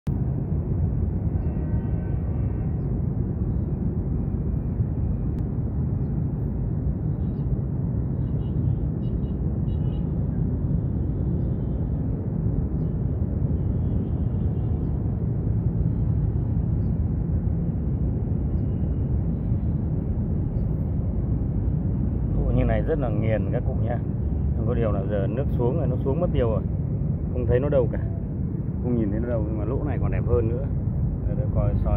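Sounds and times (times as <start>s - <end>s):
low outdoor rumble: 0.1s - 31.9s.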